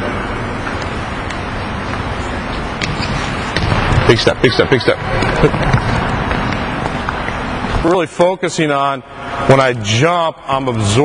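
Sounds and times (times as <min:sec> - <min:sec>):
noisy hall background: 0:00.0 - 0:11.0.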